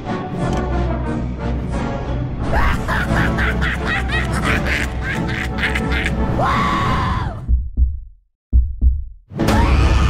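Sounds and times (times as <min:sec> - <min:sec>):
spooky background music: 0:00.0 - 0:07.5, 0:09.3 - 0:10.0
rapid cackling laugh: 0:02.6 - 0:06.2.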